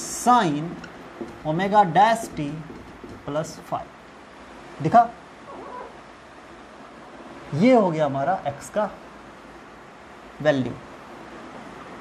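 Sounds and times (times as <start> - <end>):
marker writing on whiteboard: 0.0 - 3.7.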